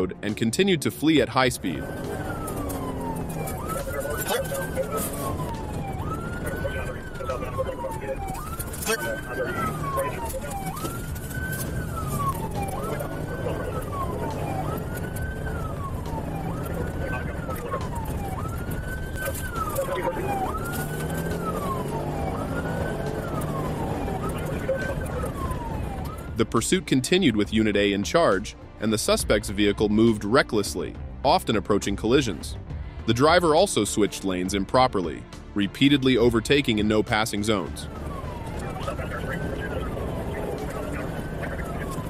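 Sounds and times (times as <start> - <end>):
road noise: 0.0 - 42.0
police siren wailing: 1.4 - 26.6, 37.5 - 42.0
car engine: 1.6 - 26.3, 37.9 - 42.0.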